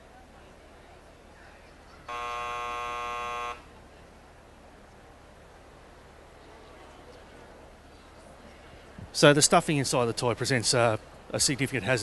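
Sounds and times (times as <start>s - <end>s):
electronic buzzer tone: 2.1s - 3.7s.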